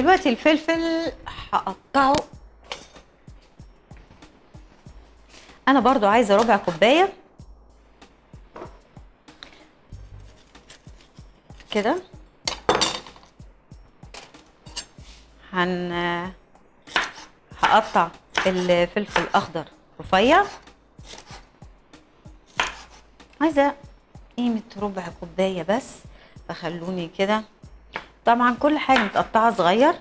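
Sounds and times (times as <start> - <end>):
faint background music: 0.0 - 30.0
knife slicing on cutting board: 16.9 - 17.3, 20.4 - 21.5, 22.5 - 23.1.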